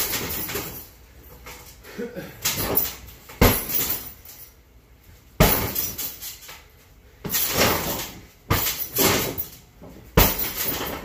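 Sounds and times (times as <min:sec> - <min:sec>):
metallic chain jingle: 0:00.0 - 0:01.8, 0:02.5 - 0:04.6, 0:05.4 - 0:06.6, 0:07.3 - 0:11.0
kick hitting punching bag: 0:02.5 - 0:04.1, 0:05.4 - 0:06.1, 0:07.2 - 0:09.5, 0:10.1 - 0:11.0.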